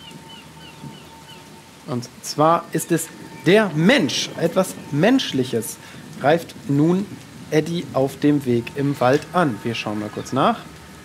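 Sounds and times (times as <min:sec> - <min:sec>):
soft rain-like hiss: 0:00.0 - 0:11.0.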